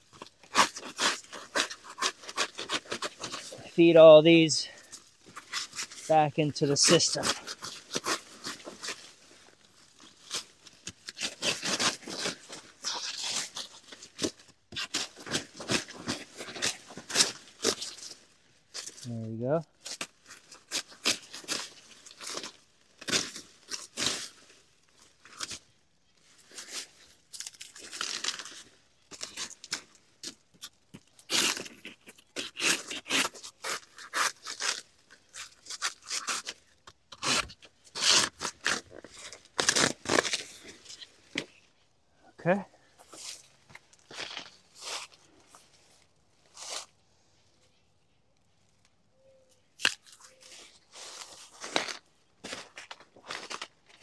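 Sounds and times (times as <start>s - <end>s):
blade chopping plant stalks: 0.2s - 3.7s, 5.2s - 9.1s, 10.1s - 18.2s, 19.8s - 24.4s, 26.6s - 41.5s, 49.8s - 50.5s.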